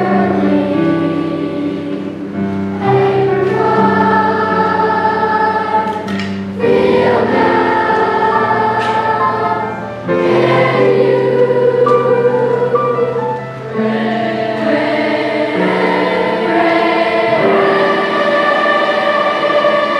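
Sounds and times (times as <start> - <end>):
choir singing: 0.0 - 19.9
digital piano accompaniment: 0.0 - 19.9.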